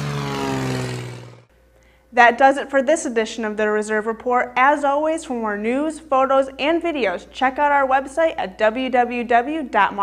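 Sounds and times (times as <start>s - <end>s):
propeller airplane engine drone: 0.0s - 2.0s.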